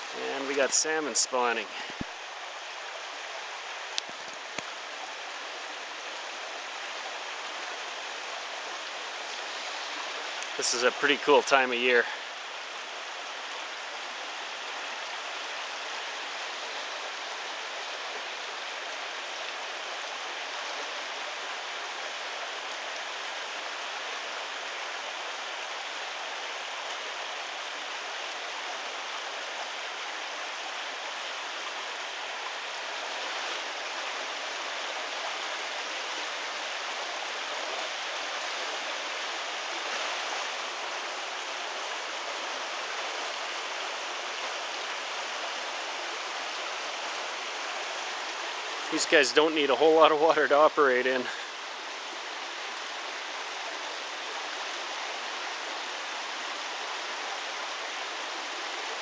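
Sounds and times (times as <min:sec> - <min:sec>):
creek water running over rocks: 0:00.0 - 0:59.0.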